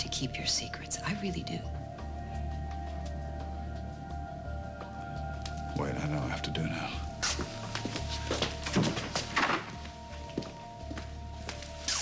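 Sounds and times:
music with held tones: 0.0s - 12.0s.

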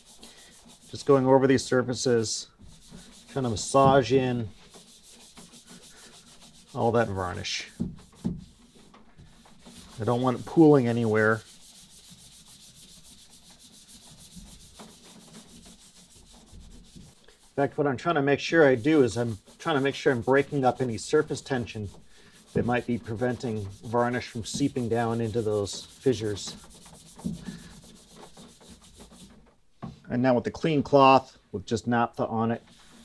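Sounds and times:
cloth rubbing on varnished wood: 0.0s - 29.5s, 32.7s - 33.0s.

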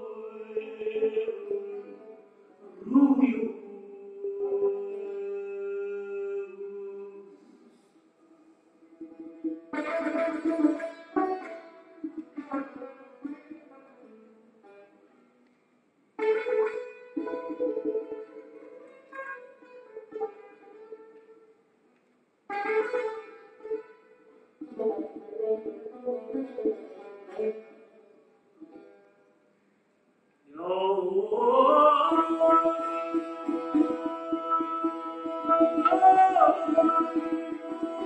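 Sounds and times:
person singing: 0.0s - 7.7s, 8.8s - 13.5s, 30.5s - 38.0s
plucked lute notes: 8.8s - 15.4s, 16.2s - 21.5s, 22.5s - 29.3s, 31.9s - 38.0s.

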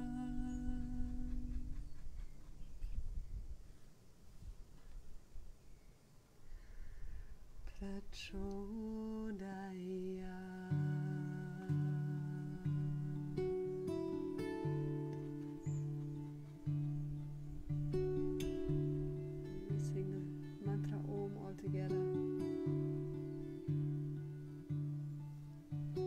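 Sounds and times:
slow acoustic guitar: 0.0s - 2.1s, 7.3s - 26.0s.

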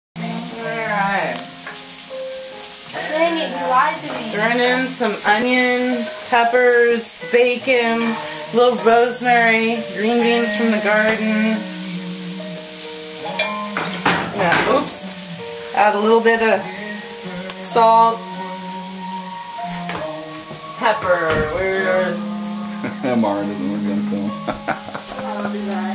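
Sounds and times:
food sizzling in a skillet: 0.2s - 25.9s.

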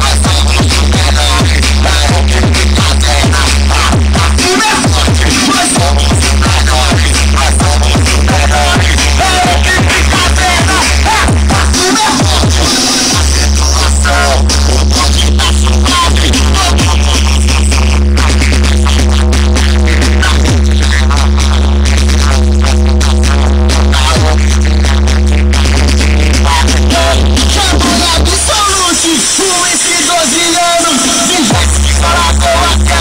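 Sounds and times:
loud electronic music with heavy bass: 0.0s - 33.0s.

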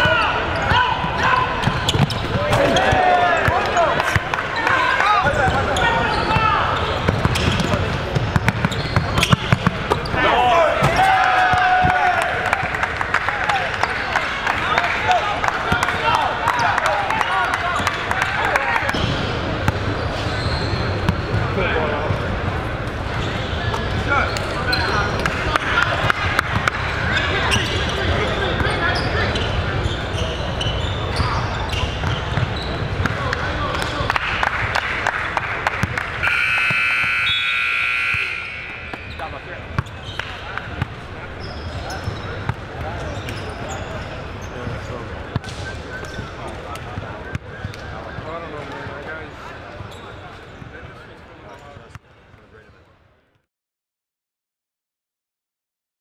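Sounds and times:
crowd voices: 0.0s - 53.0s
basketball bouncing: 1.6s - 4.4s, 7.0s - 10.1s
scoreboard buzzer: 36.2s - 39.1s.

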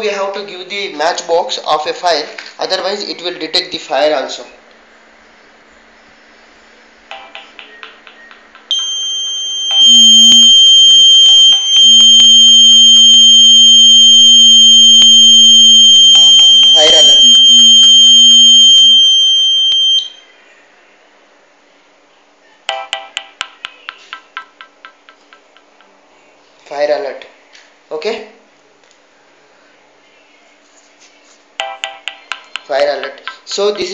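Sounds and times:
high-pitched alarm buzzer tone: 8.7s - 20.3s.

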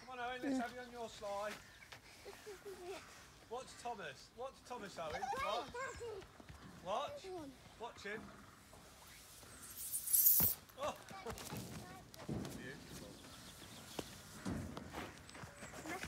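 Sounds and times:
child's voice: 5.2s - 6.3s, 11.1s - 12.3s, 15.8s - 16.0s
short rushing hiss: 9.0s - 10.6s.

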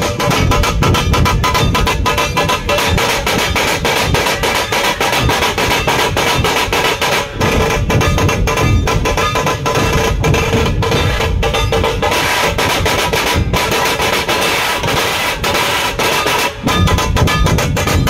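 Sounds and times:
barrel drums: 0.0s - 18.0s
tasha drums struck rapidly: 0.0s - 18.0s.

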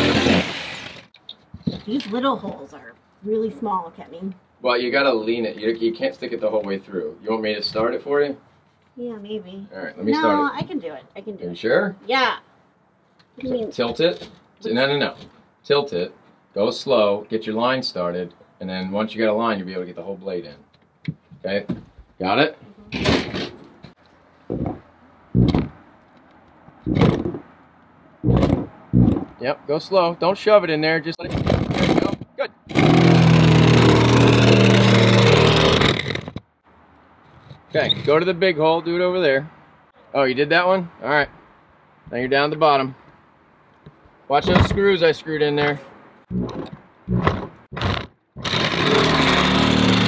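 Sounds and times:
power saw cutting wood: 0.0s - 1.1s, 31.7s - 36.4s, 46.4s - 50.0s.

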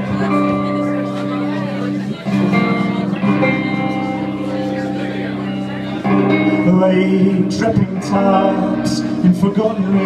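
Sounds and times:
guitar chords: 0.0s - 10.0s
live band playing: 0.0s - 10.0s.

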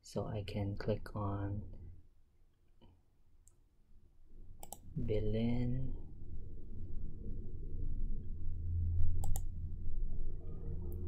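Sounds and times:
low steady hum: 0.1s - 11.0s
computer mouse click: 4.6s - 4.9s, 9.2s - 9.5s.

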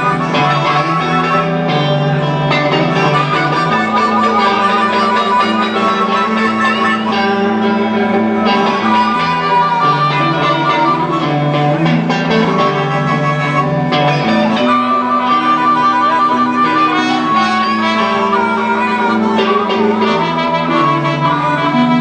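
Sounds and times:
bass line: 0.0s - 22.0s
blues guitar: 0.0s - 22.0s
long held high notes: 0.0s - 22.0s.

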